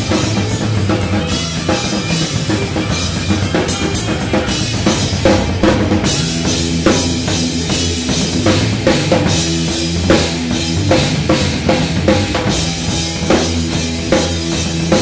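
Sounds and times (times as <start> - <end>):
distorted guitars and bass: 0.0 - 15.0
drum kit playing: 0.0 - 15.0.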